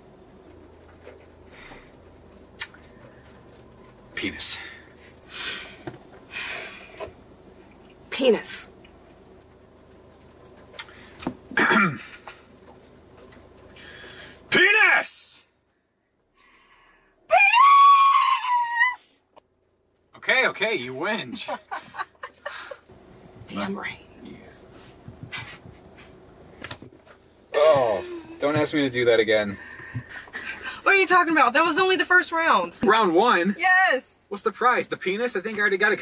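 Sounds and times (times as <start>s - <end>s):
low car cabin hum: 0.0s - 36.0s
woman screaming: 17.3s - 19.2s.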